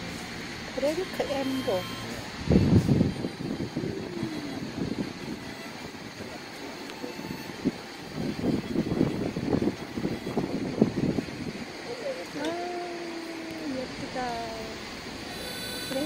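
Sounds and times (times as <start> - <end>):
fan air buffeting microphone: 0.0 - 16.0.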